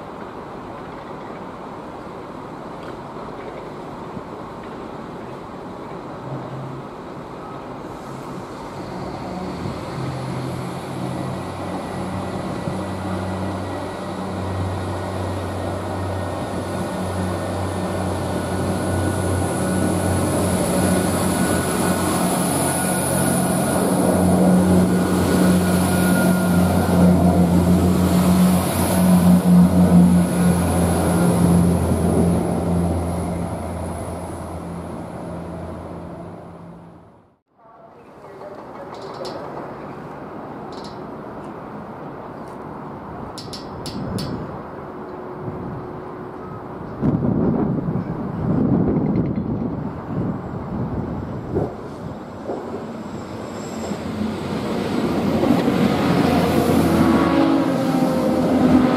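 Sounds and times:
wheel and rail noise: 0.0s - 58.9s.

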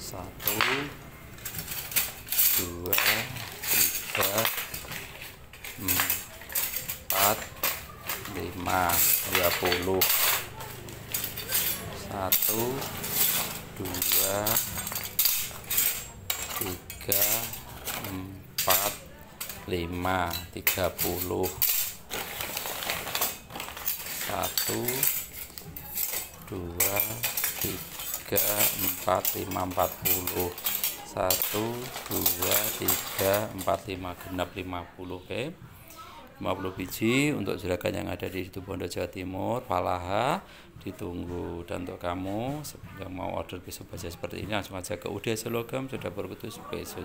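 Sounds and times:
steel knives clinking and scraping: 0.1s - 34.1s.

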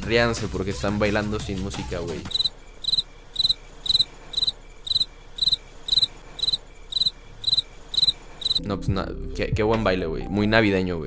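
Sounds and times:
cricket chirping: 2.3s - 8.6s.

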